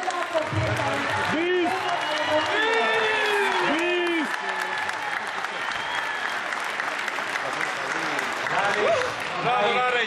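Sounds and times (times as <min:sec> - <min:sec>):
audience applauding: 0:00.0 - 0:10.0.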